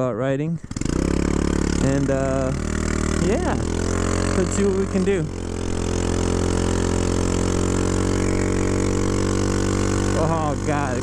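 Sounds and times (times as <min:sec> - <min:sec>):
scooter engine running: 0:00.6 - 0:11.0.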